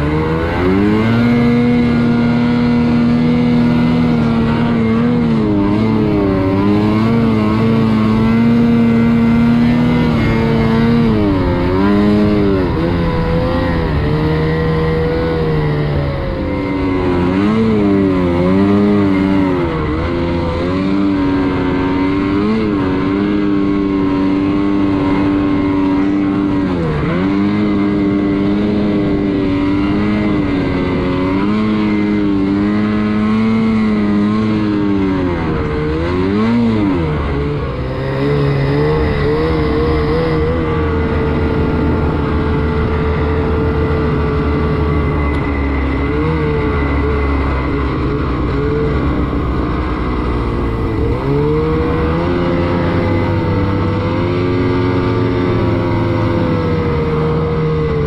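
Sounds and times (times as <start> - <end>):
snowmobile engine revving: 0.0 - 58.0.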